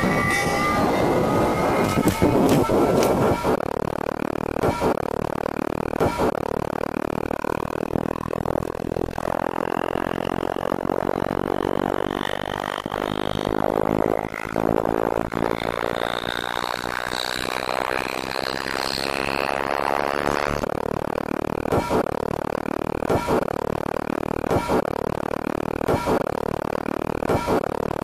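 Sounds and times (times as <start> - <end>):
faint rising high tone: 0.0 - 2.9
grainy electronic drone: 0.0 - 28.0.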